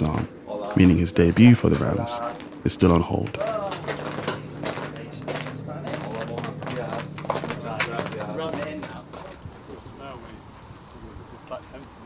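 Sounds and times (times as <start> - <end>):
low hum: 0.0 - 11.0
men chattering: 0.0 - 12.0.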